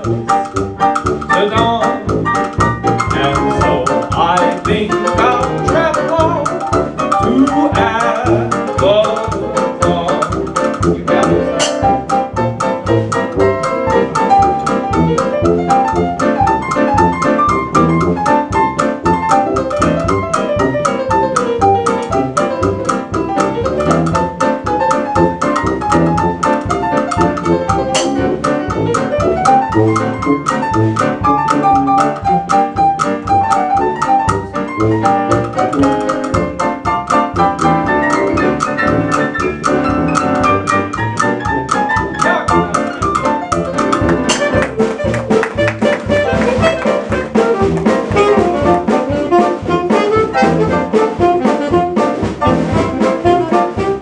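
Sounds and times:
drum kit beat: 0:00.0 - 0:54.0
piano: 0:00.0 - 0:54.0
tuba bass line: 0:00.0 - 0:54.0.

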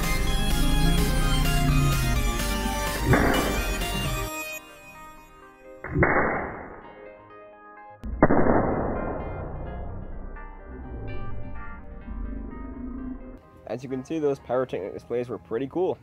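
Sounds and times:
background music: 0:00.0 - 0:16.0
solder exploding with sharp bangs: 0:03.0 - 0:04.0, 0:05.8 - 0:06.9, 0:08.0 - 0:10.1.

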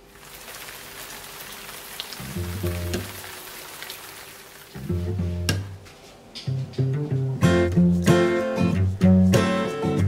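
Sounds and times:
steady rain falling: 0:00.0 - 0:04.9.

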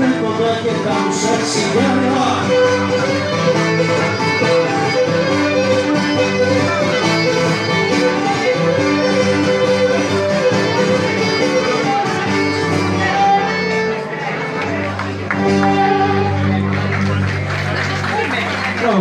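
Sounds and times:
bowed string melody: 0:00.0 - 0:18.3
plucked string accompaniment: 0:00.0 - 0:19.0.

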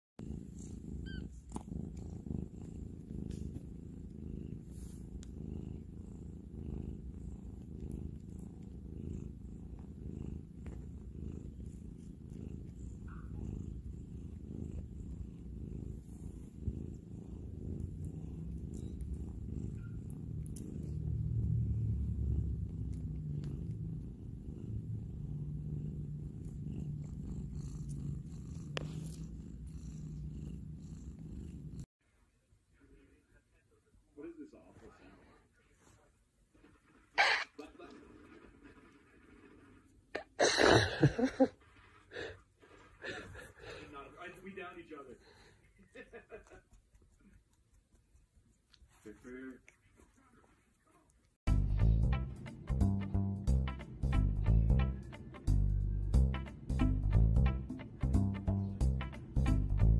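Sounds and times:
cat purring: 0:00.2 - 0:59.9.

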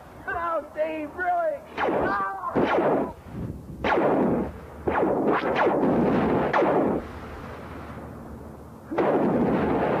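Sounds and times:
laser gun blasts: 0:01.8 - 0:03.2, 0:03.8 - 0:07.0, 0:08.9 - 0:10.0.

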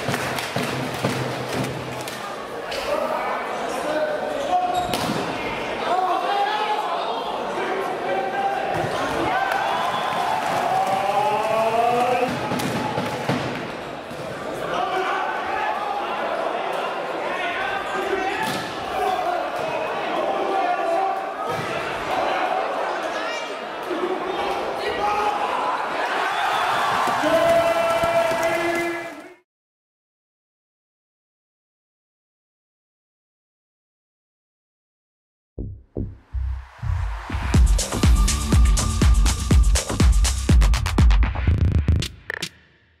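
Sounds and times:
voices of players and crowd: 0:00.0 - 0:29.4.

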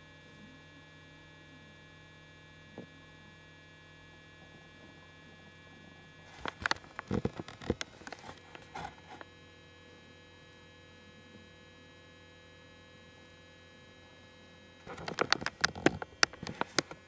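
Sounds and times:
electrical mains hum: 0:00.0 - 0:17.0.

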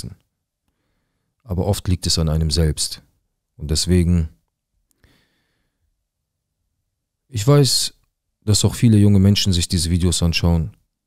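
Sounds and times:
breath into a microphone: 0:00.7 - 0:01.4, 0:04.9 - 0:05.9.

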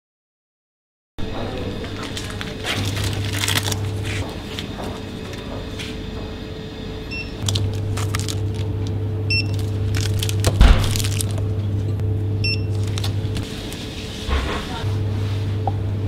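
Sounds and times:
steady low hum: 0:01.2 - 0:16.0
barcode scanner beeps: 0:09.3 - 0:09.6, 0:12.4 - 0:12.8.

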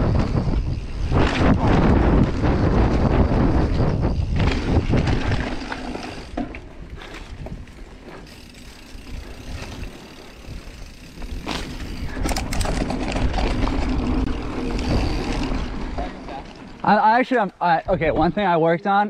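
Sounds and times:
wind buffeting microphone: 0:00.0 - 0:16.8, 0:17.8 - 0:18.4
tyres rumbling on dirt: 0:00.0 - 0:18.2
bike knocks and rattles: 0:00.1 - 0:16.2.

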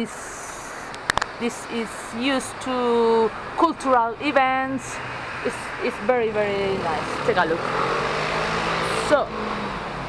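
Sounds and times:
passing cars rushing: 0:00.8 - 0:10.0.

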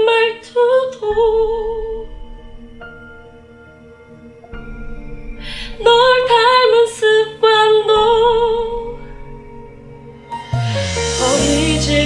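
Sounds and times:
woman singing a ballad: 0:00.0 - 0:02.2, 0:05.6 - 0:09.0, 0:11.0 - 0:12.0
soft sustained accompaniment: 0:00.0 - 0:12.0.

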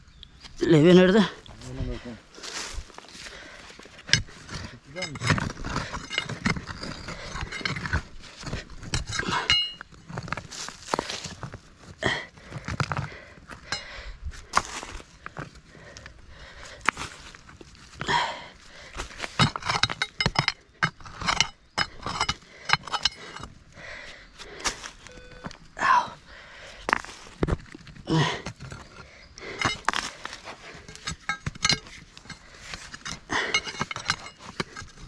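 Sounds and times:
scraping in dirt: 0:01.5 - 0:35.0
digging bar clinking on stone: 0:04.0 - 0:11.1, 0:19.0 - 0:23.6, 0:26.8 - 0:35.0.

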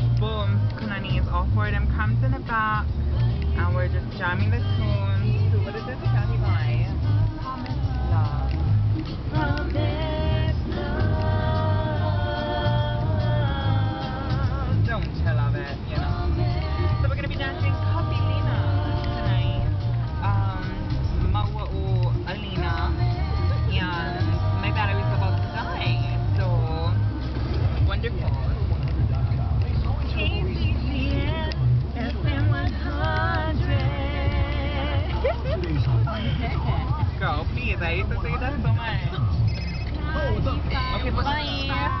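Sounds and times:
people talking: 0:00.0 - 0:08.7, 0:09.3 - 0:27.0, 0:27.8 - 0:42.0
music with singing on car stereo: 0:00.0 - 0:42.0
road rumble: 0:00.0 - 0:42.0.

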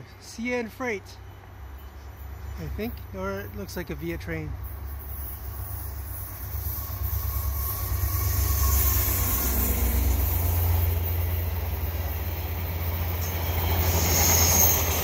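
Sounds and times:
diesel locomotive engine passing: 0:00.0 - 0:15.0
passenger cars rolling on rails: 0:00.0 - 0:15.0.

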